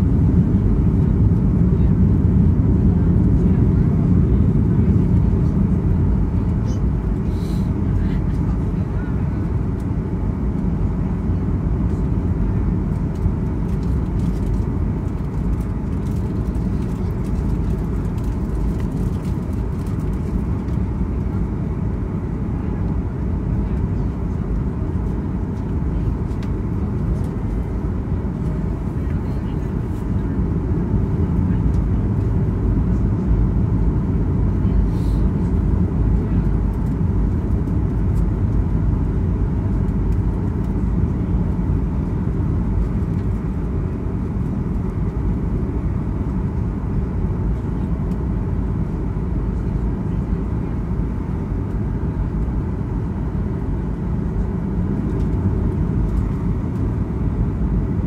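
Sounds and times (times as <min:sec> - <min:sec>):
aircraft cabin engine rumble: 0:00.0 - 0:58.0.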